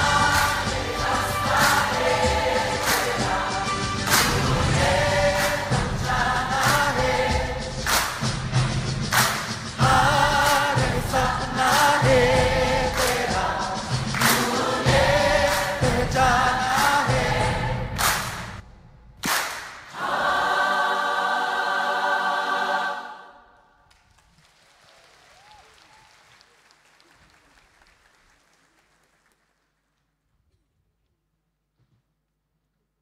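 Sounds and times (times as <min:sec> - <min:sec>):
choir singing: 0:00.0 - 0:08.3, 0:09.2 - 0:18.4, 0:19.9 - 0:23.7
rhythmic hand claps: 0:00.0 - 0:18.6, 0:19.2 - 0:20.2.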